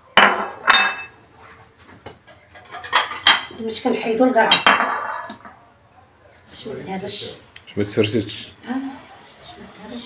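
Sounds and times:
plates and utensils clinking: 0.1s - 1.2s, 2.2s - 3.8s, 4.4s - 5.6s.

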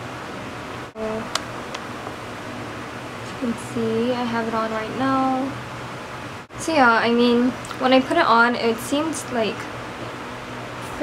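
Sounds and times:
microphone hiss: 0.0s - 11.0s.

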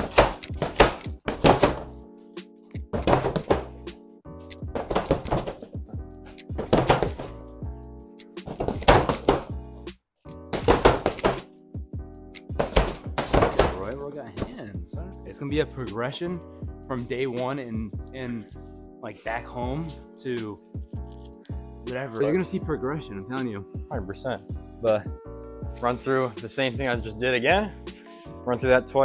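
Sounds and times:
gloves thudding on heavy bag: 0.0s - 2.0s, 2.8s - 3.8s, 4.7s - 5.8s, 6.6s - 7.4s, 8.5s - 9.7s, 10.5s - 11.6s, 12.5s - 13.9s
background music with chords: 0.0s - 29.0s.

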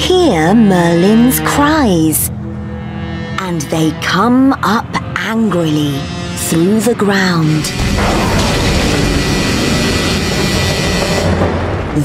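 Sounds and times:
background music: 0.0s - 12.0s
loud rumbling: 7.6s - 12.0s.

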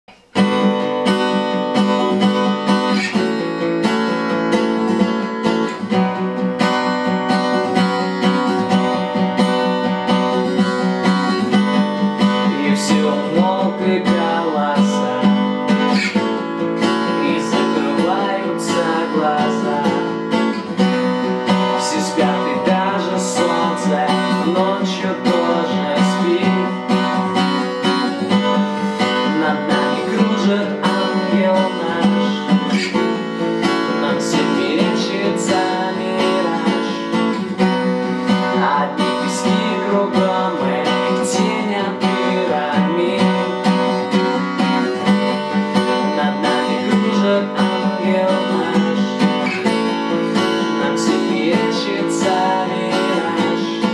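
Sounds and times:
acoustic guitar strumming: 0.1s - 53.9s
man singing: 5.9s - 53.9s.

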